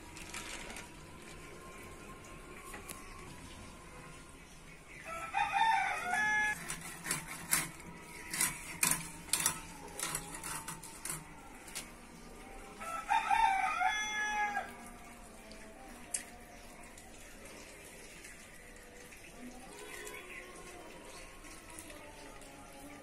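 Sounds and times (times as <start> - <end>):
rooster crowing: 5.0 - 6.7, 12.7 - 14.9.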